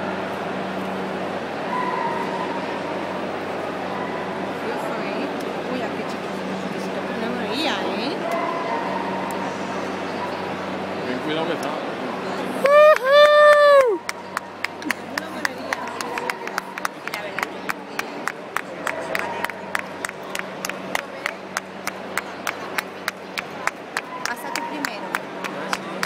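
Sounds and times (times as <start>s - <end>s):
person whooping: 12.6s - 14.0s
spectators clapping rhythmically: 12.6s - 26.0s.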